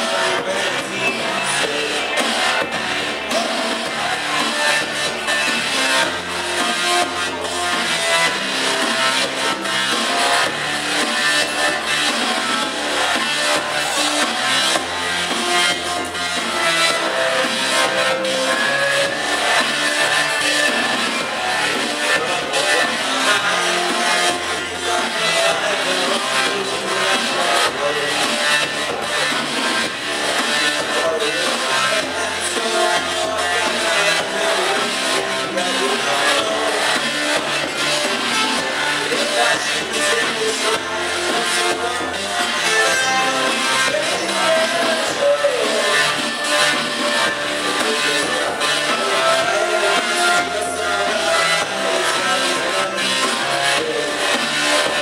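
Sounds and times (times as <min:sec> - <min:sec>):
drum kit beat: 0:00.0 - 0:55.0
rock band playing live: 0:00.0 - 0:55.0.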